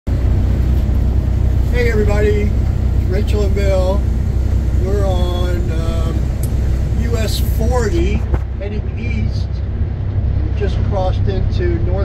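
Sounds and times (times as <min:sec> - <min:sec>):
car cabin rumble at speed: 0:00.1 - 0:12.0.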